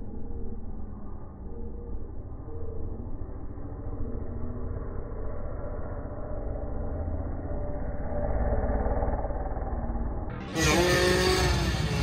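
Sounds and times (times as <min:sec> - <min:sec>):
dirt bike engine accelerating: 0:09.8 - 0:12.0.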